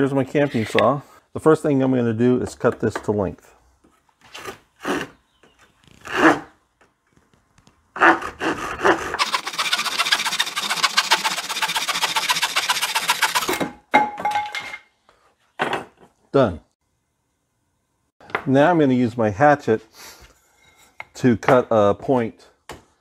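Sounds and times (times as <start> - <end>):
saw cutting wood: 8.0 - 13.7.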